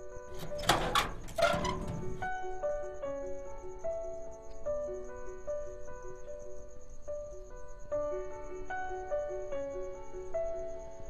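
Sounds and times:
door rattling scrape: 0.0 - 2.6.

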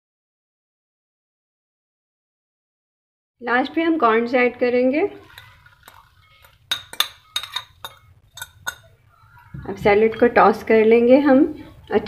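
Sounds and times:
glass dishes clinking: 5.2 - 10.4.

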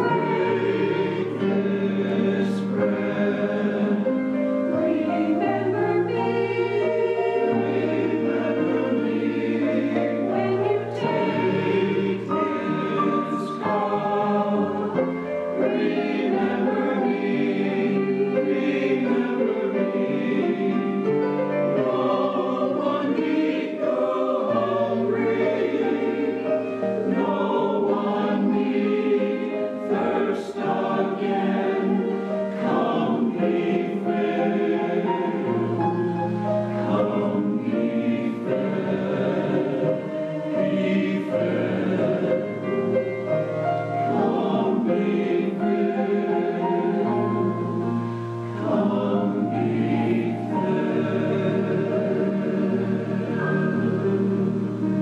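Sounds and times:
choir singing in harmony: 0.0 - 55.0
piano: 0.0 - 55.0.

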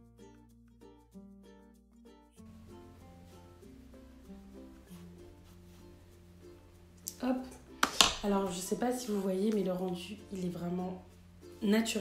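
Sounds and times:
plucked string music with bass: 0.0 - 12.0
woman's voice: 7.1 - 12.0.

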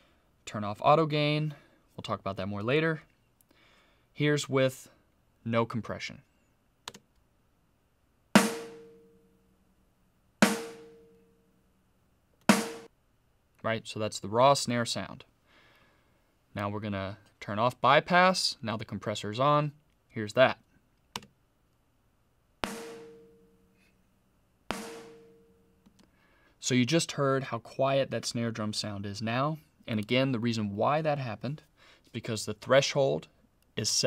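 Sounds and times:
snare drum hits: 8.4 - 9.0, 10.4 - 11.0, 12.5 - 12.9, 22.6 - 23.3, 24.7 - 25.4.

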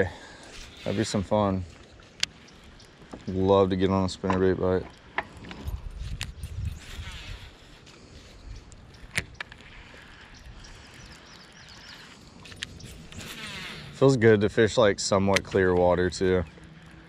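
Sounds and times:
reel clicks: 0.4 - 3.4, 4.0 - 17.0
fishing reel gear whir: 5.6 - 17.0.

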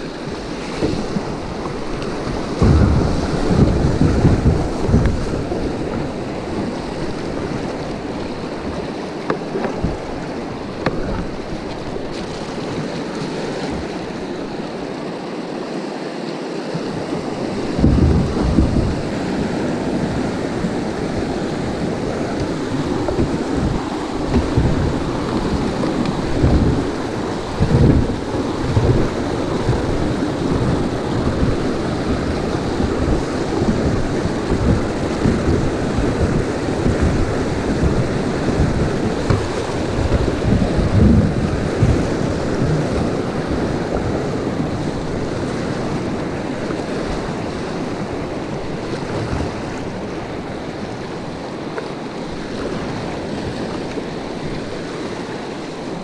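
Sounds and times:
rushing whitewater: 0.0 - 56.0
deep thumps and rumbles: 1.1 - 6.2, 17.6 - 44.4.

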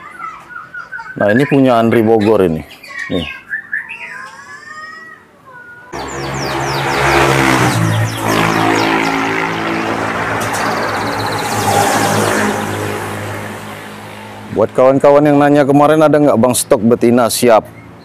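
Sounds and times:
birds chirping: 0.0 - 18.0
vehicle engine droning: 6.0 - 15.0.

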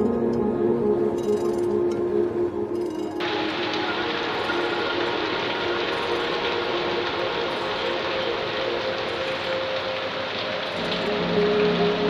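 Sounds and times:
heavy rain on corrugated roof: 3.2 - 12.0.

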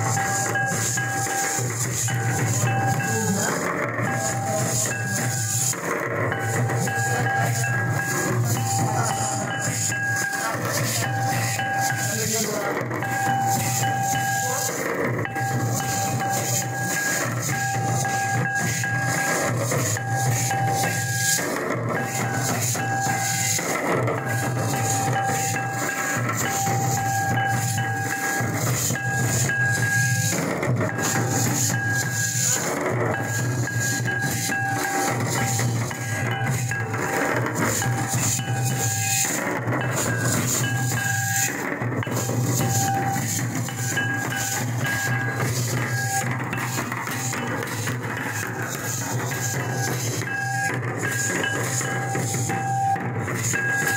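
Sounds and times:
barrel drums beaten with sticks: 0.0 - 53.9
held high tone: 0.0 - 53.9.

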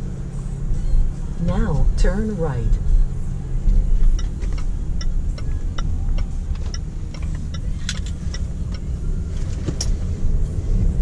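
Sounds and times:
engine and road rumble in cabin: 0.0 - 11.0
turn signal ticking: 0.6 - 11.0.

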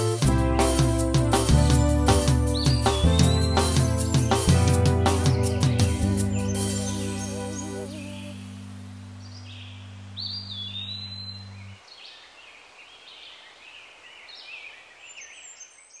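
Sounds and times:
held low music chord: 0.0 - 11.8
birds chirping: 0.0 - 16.0.

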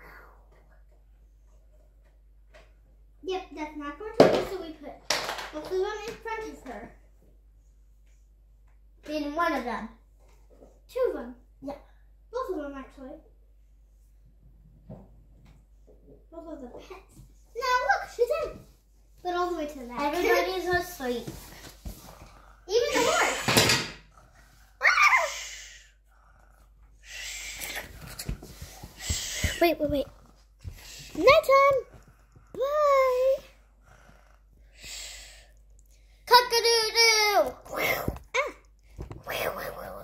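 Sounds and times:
children talking: 19.3 - 21.4, 22.6 - 23.6, 30.9 - 32.0.

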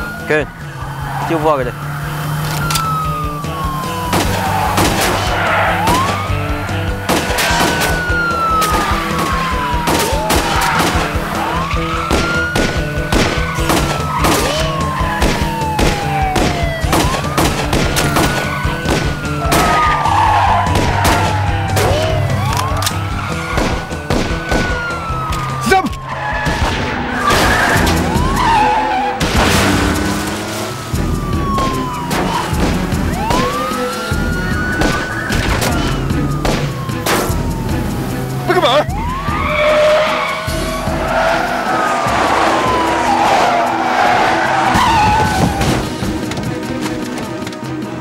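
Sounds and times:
police siren wailing: 0.0 - 47.2
tense drama score: 0.0 - 48.0.

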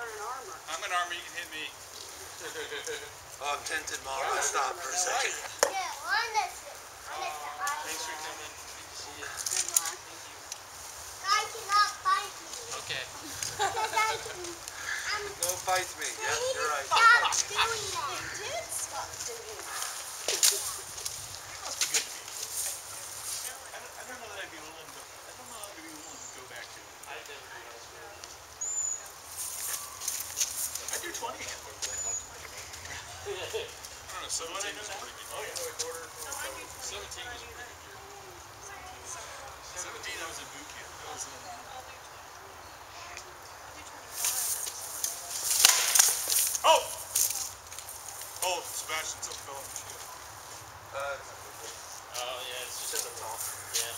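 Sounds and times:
distant people talking: 0.0 - 53.9.

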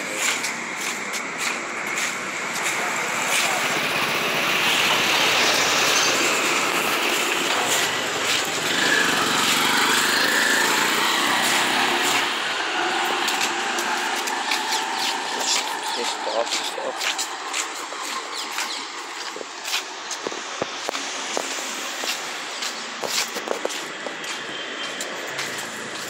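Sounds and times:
street traffic: 0.0 - 26.0
small engine passing close: 2.8 - 16.3.

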